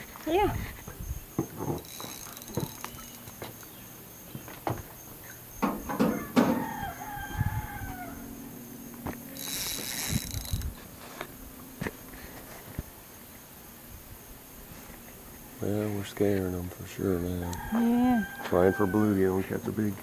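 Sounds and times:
scattered knocks: 5.6s - 6.7s
drawn-out animal call: 17.2s - 19.5s.

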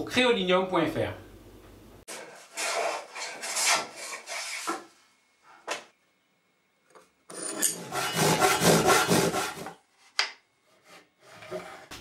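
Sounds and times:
tool rasping across wood: 7.7s - 9.8s, 10.7s - 12.0s.

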